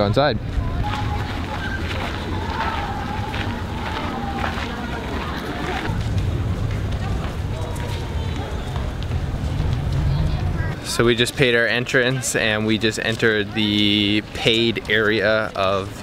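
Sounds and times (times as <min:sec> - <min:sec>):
wind rumble on microphone: 0:00.3 - 0:10.8
faint voices of people: 0:00.4 - 0:11.2.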